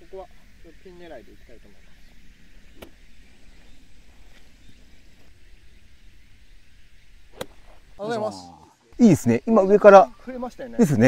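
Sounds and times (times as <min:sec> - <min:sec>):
outdoor background noise: 0:00.0 - 0:11.0
golf club striking ball: 0:02.7 - 0:03.2, 0:07.3 - 0:07.8.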